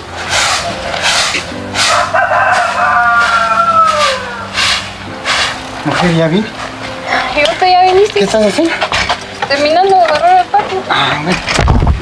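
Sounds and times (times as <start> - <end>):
broom sweeping dirt: 0.0 - 6.9
rooster crowing: 1.8 - 4.9.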